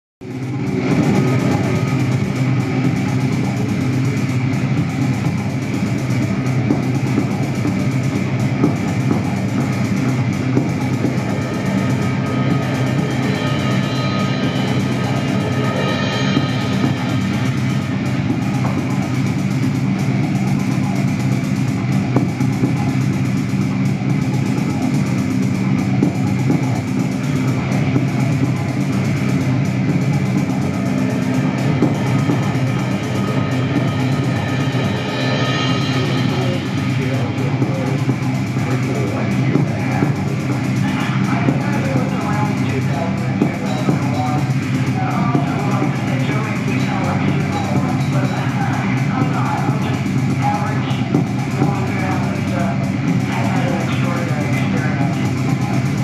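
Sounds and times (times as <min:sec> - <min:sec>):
low electronic drone: 0:00.2 - 0:56.0.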